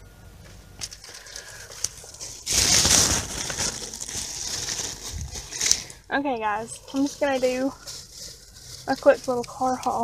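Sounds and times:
rustling and rubbing on microphone: 2.0s - 5.8s, 6.4s - 10.0s.

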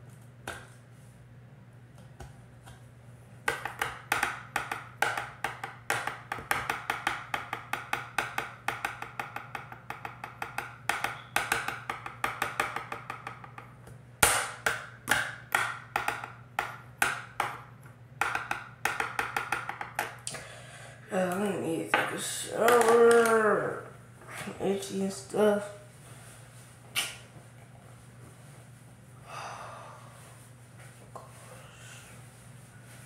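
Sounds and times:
pens tapping on hard surface: 3.5s - 13.7s, 14.3s - 20.2s.

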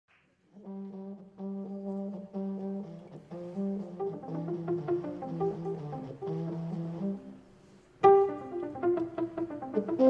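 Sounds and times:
low brass instrument long notes: 0.6s - 10.0s.

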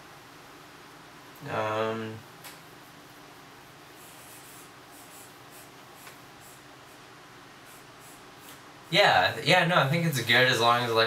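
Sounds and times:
steady room hiss: 0.0s - 11.0s
fingers scratching hair: 3.9s - 8.6s.

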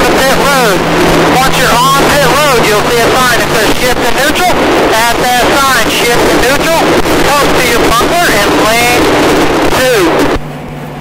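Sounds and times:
race car engine at speed: 0.0s - 11.0s.

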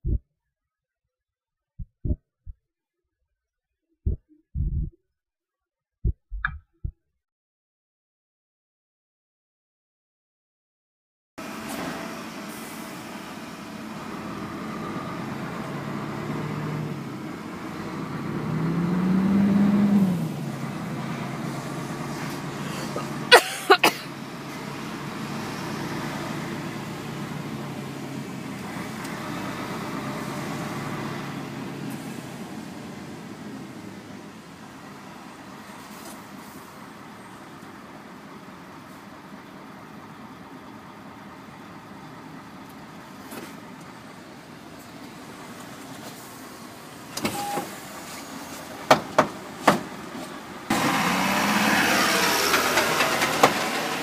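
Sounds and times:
truck diesel engine running: 11.4s - 45.5s, 47.8s - 54.0s.

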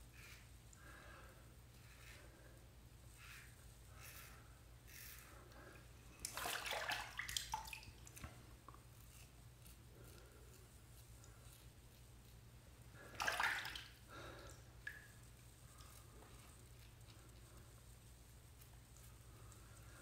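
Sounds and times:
razor scraping stubble: 0.1s - 0.5s, 1.7s - 2.4s, 3.0s - 6.2s, 8.1s - 12.5s.

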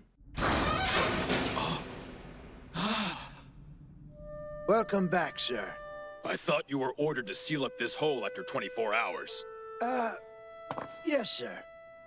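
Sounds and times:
man sighing: 2.7s - 3.6s.

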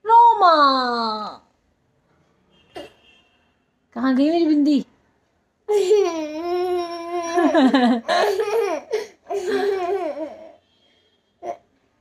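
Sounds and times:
boy laughing: 5.7s - 10.5s
woman laughing: 7.2s - 10.2s.

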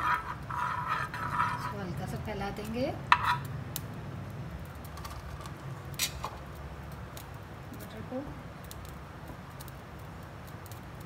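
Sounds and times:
spoon scraping a pan: 0.0s - 2.0s, 3.1s - 3.5s.

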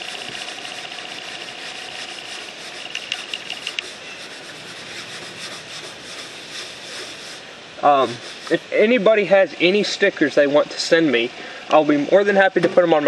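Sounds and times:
cloth rubbing on mower body: 0.0s - 10.0s.

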